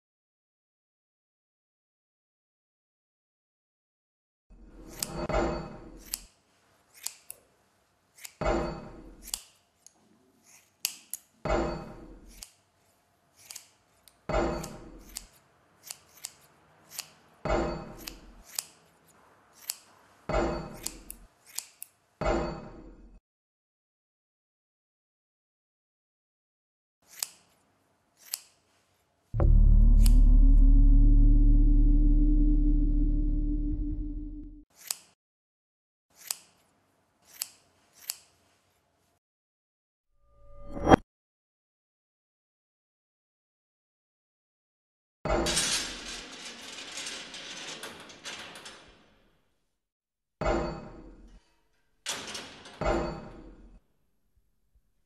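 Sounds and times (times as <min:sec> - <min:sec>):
scissors snipping hair: 0:06.0 - 0:07.5, 0:08.1 - 0:08.4, 0:09.2 - 0:11.3, 0:12.3 - 0:12.6, 0:13.3 - 0:14.2, 0:15.0 - 0:17.2, 0:18.0 - 0:18.9, 0:19.6 - 0:19.9, 0:20.8 - 0:22.0, 0:27.1 - 0:27.6, 0:28.2 - 0:28.6, 0:34.8 - 0:35.2, 0:36.2 - 0:38.3.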